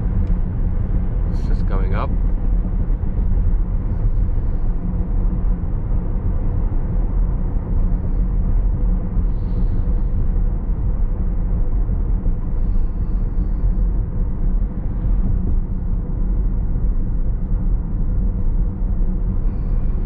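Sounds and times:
tyre and road noise in car cabin: 0.0 - 20.0.

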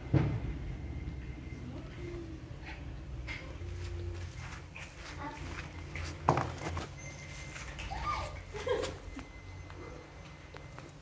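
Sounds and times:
scuffling on floor: 3.6 - 9.0.

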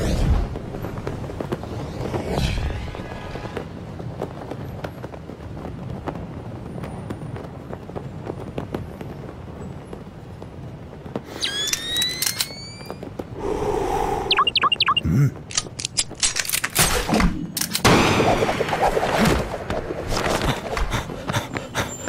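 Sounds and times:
rising electronic whine: 14.3 - 15.0
short electronic chirps: 14.3 - 15.0.

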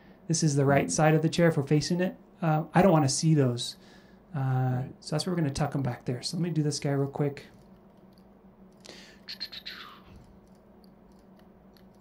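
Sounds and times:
computer mouse clicks: 10.1 - 12.0.

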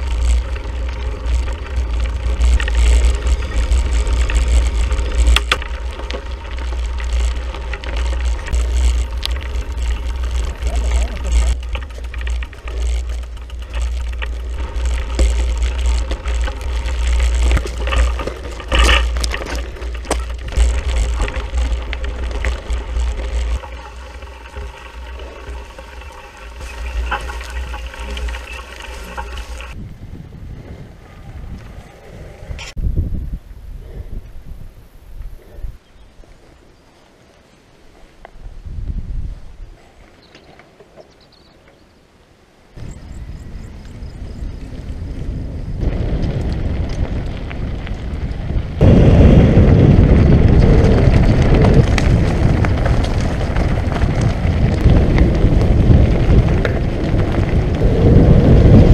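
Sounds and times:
bike rattling over rough ground: 0.0 - 33.2, 42.7 - 58.9
wind buffeting microphone: 0.0 - 36.0, 38.4 - 39.9, 42.8 - 58.9.

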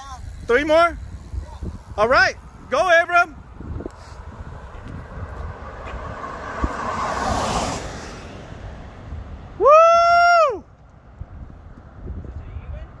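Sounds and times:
car passing: 3.3 - 13.0
high-pitched whoo cheer: 9.6 - 10.7.

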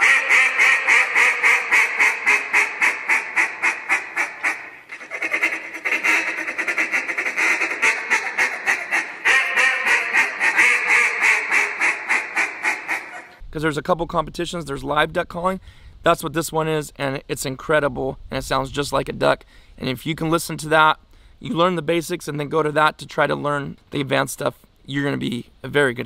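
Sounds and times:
duck call quacking: 0.0 - 13.4.

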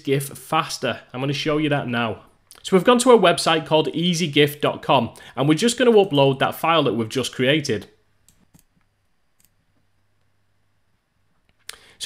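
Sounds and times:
faint low hum: 0.0 - 12.0
computer mouse clicks: 8.3 - 9.6.

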